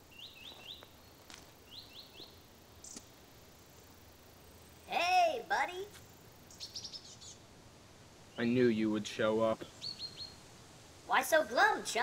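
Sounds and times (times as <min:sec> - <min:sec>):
bird chirping: 0:00.0 - 0:05.1, 0:06.1 - 0:07.5, 0:08.2 - 0:08.8, 0:09.6 - 0:10.5.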